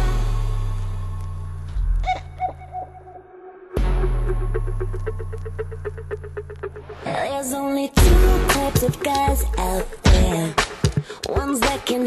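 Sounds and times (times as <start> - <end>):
low drone: 0.0 - 7.3.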